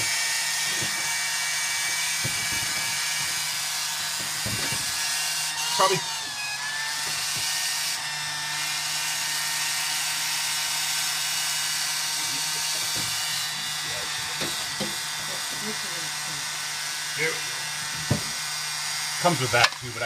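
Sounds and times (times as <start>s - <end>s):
electric water pump humming: 0.0s - 20.0s.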